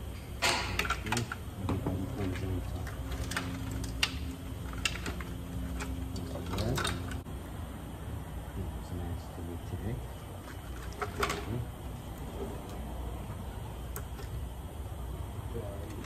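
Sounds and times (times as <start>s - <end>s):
clicks and knocks of car parts: 0.4s - 7.2s.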